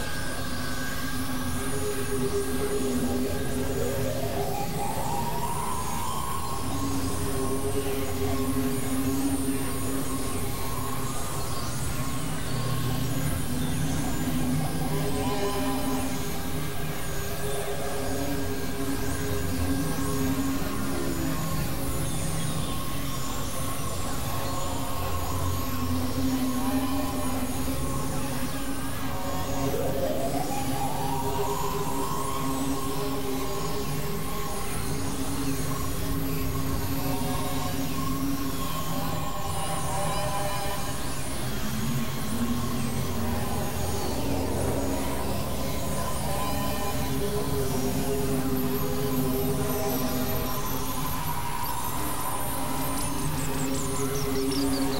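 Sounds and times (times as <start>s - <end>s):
synthesizer drone music: 0.0s - 54.9s.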